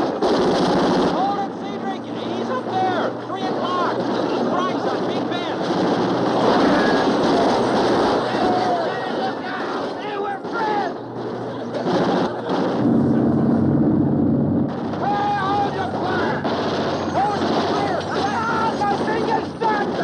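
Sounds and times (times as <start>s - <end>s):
steady droning tone: 12.8s - 16.0s.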